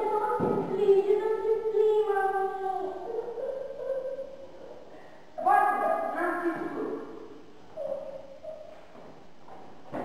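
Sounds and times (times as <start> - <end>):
faint drawn-out voice: 0.0 - 8.8.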